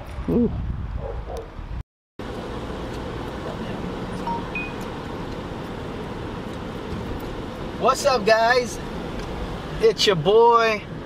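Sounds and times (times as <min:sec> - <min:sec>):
wind noise: 0:00.0 - 0:01.8
car road and engine noise: 0:00.0 - 0:11.0.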